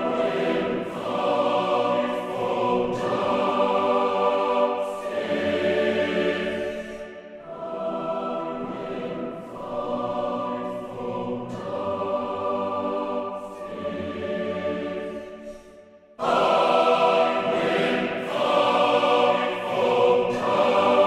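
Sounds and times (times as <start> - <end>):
choir singing sustained chords: 0.0 - 21.0.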